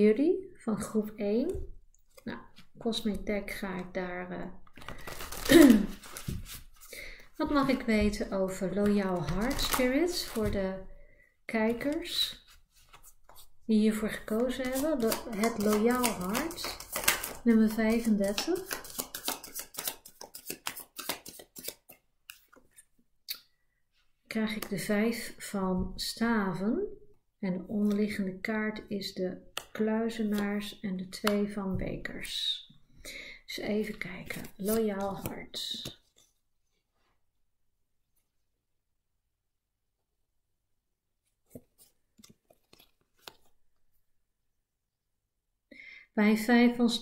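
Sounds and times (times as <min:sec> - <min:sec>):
cards being shuffled: 0:04.6 - 0:06.9, 0:08.7 - 0:10.6, 0:14.2 - 0:22.9, 0:33.9 - 0:36.4, 0:41.5 - 0:43.6
cards clicking and snapping: 0:14.6 - 0:17.5, 0:18.2 - 0:22.8.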